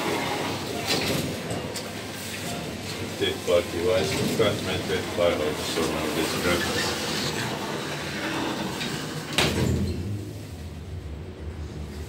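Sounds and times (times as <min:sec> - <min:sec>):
elevator doors sliding shut: 0:00.0 - 0:12.0
shop background noise: 0:00.0 - 0:12.0
low hum: 0:09.8 - 0:12.0.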